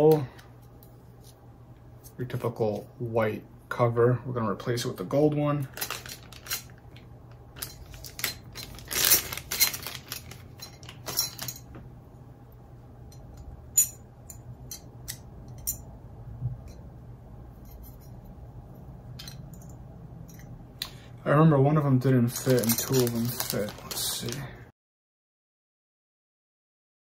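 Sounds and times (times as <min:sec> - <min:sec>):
faint low hum: 0:00.0 - 0:24.7.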